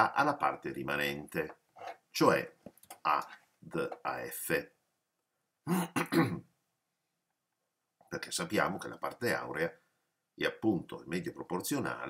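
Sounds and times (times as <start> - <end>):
man coughing: 5.7 - 6.5.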